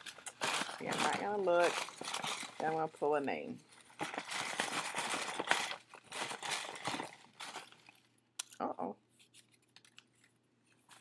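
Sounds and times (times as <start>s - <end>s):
paper slips rustling: 0.0s - 8.0s.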